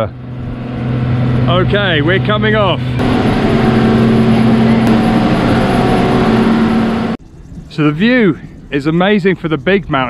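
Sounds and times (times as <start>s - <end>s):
chairlift machinery humming: 0.0s - 7.2s.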